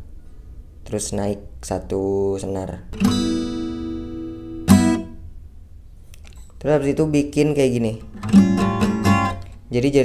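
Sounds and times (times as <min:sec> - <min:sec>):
acoustic guitar chord ringing: 0:03.0 - 0:05.3, 0:08.0 - 0:09.5.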